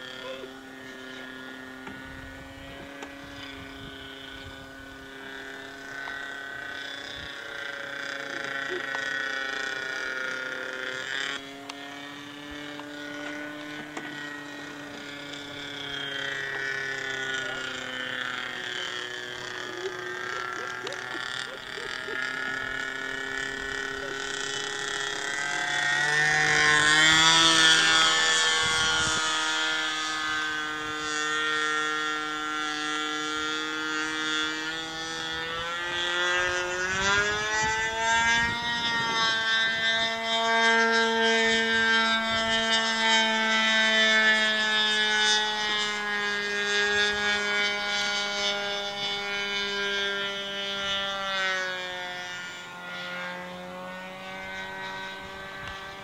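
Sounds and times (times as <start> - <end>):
model plane engine in flight: 0.0 - 56.0.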